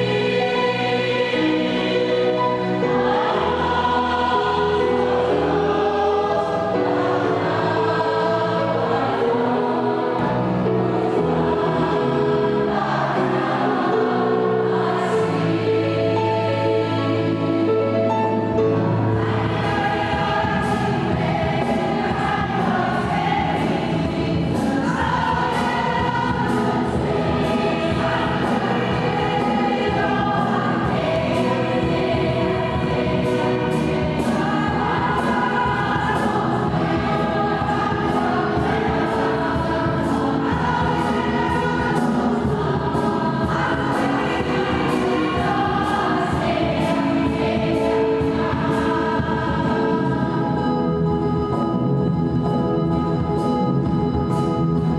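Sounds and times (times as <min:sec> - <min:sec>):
choir singing a hymn: 0:00.0 - 0:54.9
electric keyboard: 0:00.0 - 0:54.9.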